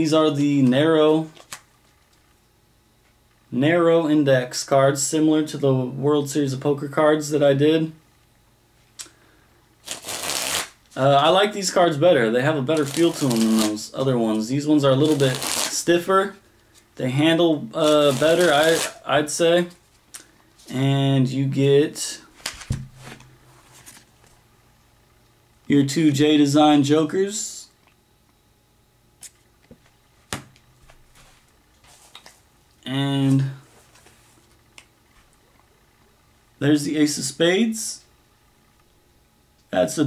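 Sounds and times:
playing cards riffled: 9.8s - 10.8s, 12.7s - 13.8s, 15.0s - 15.8s, 17.8s - 19.0s.

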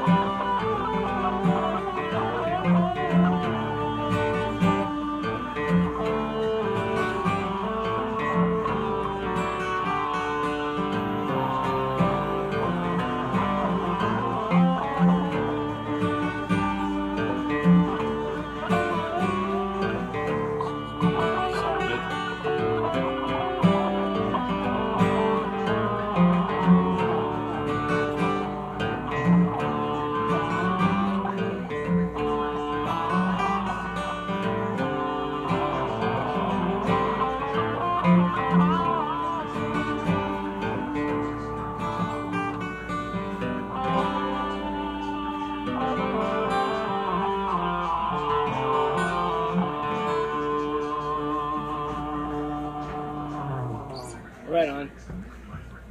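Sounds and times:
electric guitar through amplifier: 0.0s - 55.9s.

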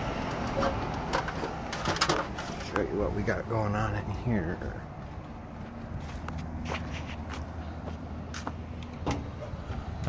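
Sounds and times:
footsteps on pavement: 0.6s - 10.0s.

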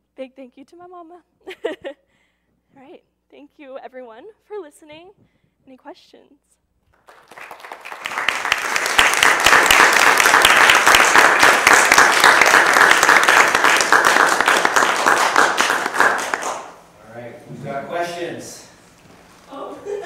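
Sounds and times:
audience applauding: 6.9s - 16.8s.

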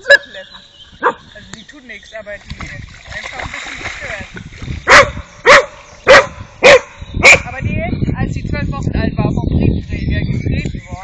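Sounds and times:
dog barking: 4.9s - 7.5s.

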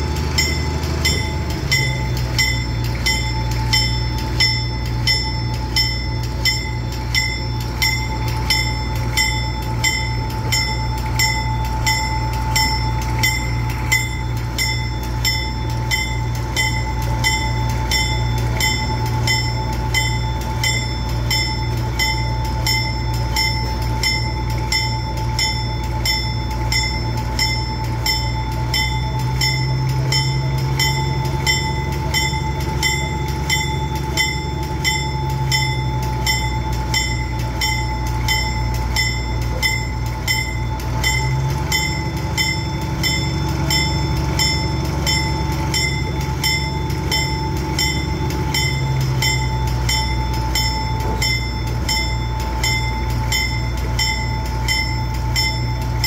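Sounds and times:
train rumbling: 0.0s - 56.0s.

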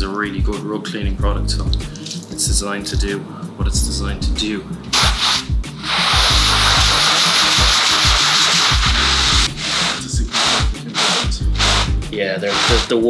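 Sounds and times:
background music with steady beat: 0.0s - 13.0s
brush scrubbing wet rug: 5.0s - 11.9s, 12.5s - 13.0s.

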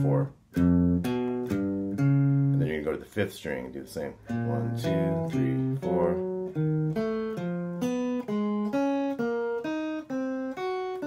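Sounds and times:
electric guitar single notes: 0.0s - 2.9s, 4.2s - 11.0s.

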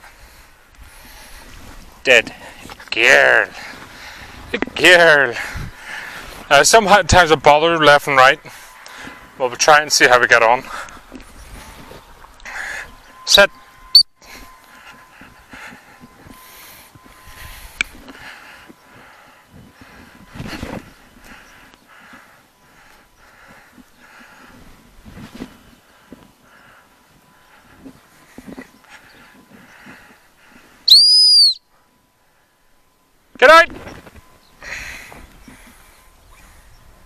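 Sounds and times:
faint rustling: 10.4s - 30.8s
high-pitched dog whistle blast: 30.9s - 31.7s.

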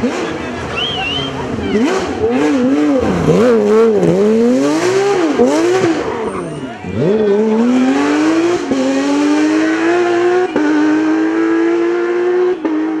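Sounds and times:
race car engine revving: 0.0s - 13.0s.

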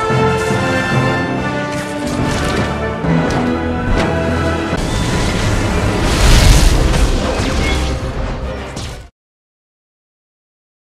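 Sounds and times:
film music score: 0.0s - 9.1s.

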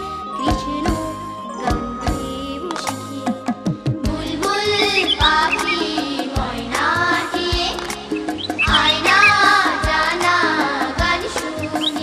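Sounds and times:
background music with steady beat: 0.0s - 12.0s
high bird chirps: 4.8s - 5.9s, 8.1s - 9.6s, 11.6s - 12.0s.

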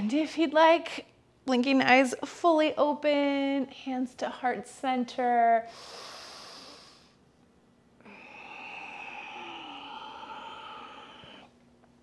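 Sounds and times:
woman exhaling sigh: 8.0s - 11.5s.

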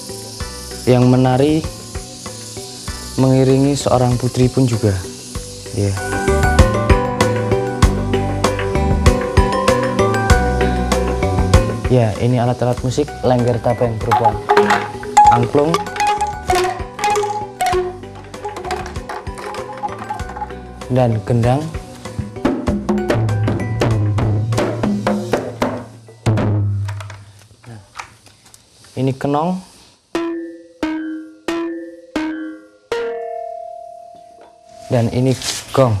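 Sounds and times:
hand percussion: 13.8s - 21.3s
bamboo angklung notes: 14.0s - 20.6s.

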